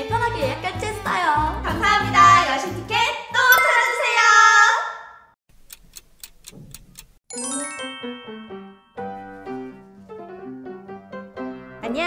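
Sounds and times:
bell-like chime melody: 0:03.5 - 0:04.6, 0:07.3 - 0:09.0
clock ticking: 0:05.5 - 0:07.2.

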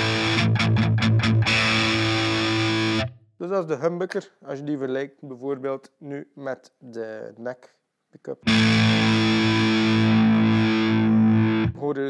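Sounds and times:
distorted electric guitar chord ringing: 0:00.0 - 0:03.1, 0:08.5 - 0:11.8.

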